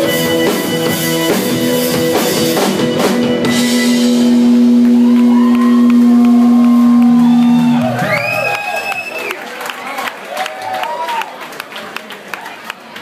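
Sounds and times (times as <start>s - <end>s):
rock band chord ringing: 0.0s - 8.5s
crowd cheering and whooping: 4.4s - 11.4s
scattered clapping: 4.8s - 13.0s
whistle: 7.2s - 9.4s.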